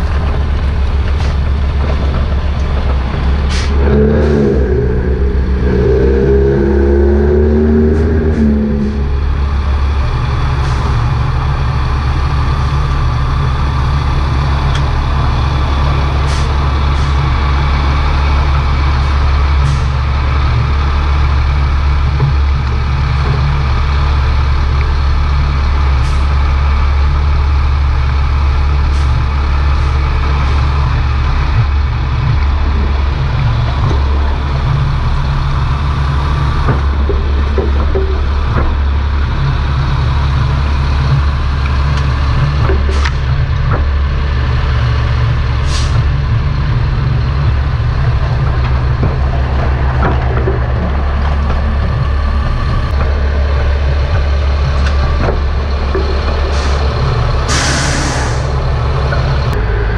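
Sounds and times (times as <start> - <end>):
diesel truck engines running: 0.0 - 59.9
brief air hisses: 57.5 - 58.5.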